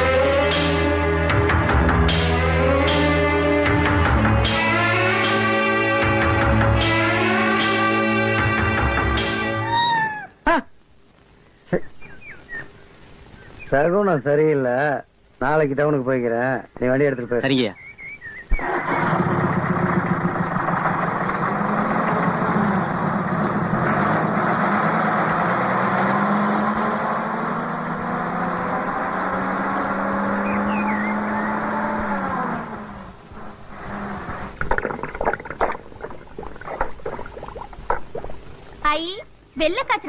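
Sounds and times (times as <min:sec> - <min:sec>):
vehicle engine running: 0:18.6 - 0:34.4.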